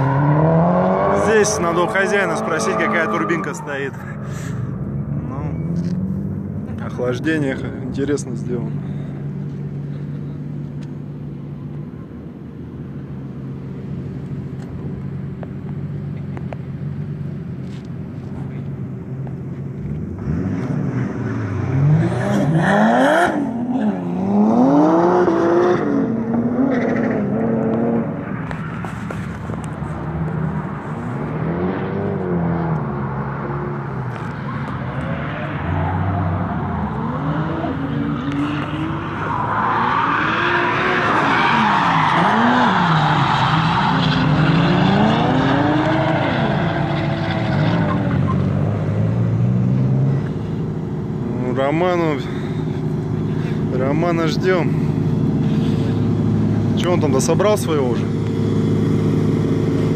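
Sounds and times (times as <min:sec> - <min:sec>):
car engine idling and revving: 0:00.0 - 0:59.9.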